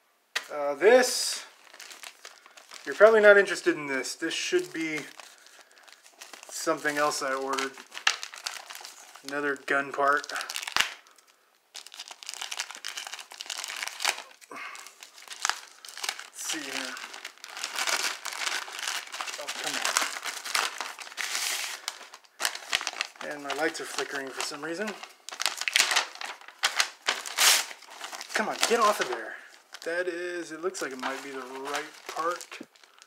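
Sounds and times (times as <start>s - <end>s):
paper packaging crumpling: 1.4s - 3.7s, 4.3s - 33.0s.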